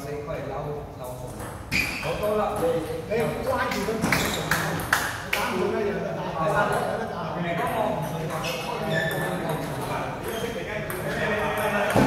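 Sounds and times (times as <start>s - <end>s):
people talking in echoing hall: 0.0s - 12.0s.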